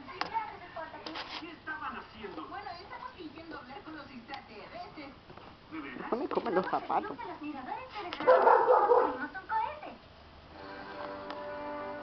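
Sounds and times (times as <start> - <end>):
puppy barking: 8.2 - 9.3.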